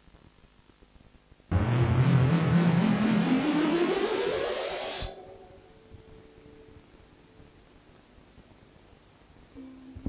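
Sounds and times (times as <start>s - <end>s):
whooshing engine-like sound rising: 1.5s - 5.6s.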